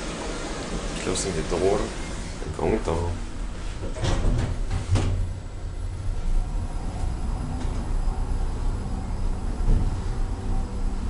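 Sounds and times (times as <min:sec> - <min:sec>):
elevator car rumbling: 0:00.0 - 0:11.0.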